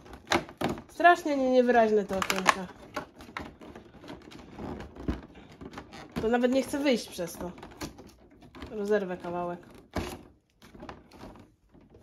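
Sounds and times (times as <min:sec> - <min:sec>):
faint crackling and rustling: 0:00.0 - 0:12.0.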